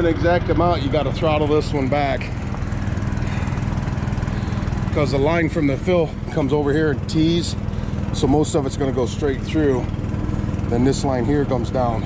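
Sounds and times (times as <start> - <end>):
engine droning steadily: 0.0 - 12.0.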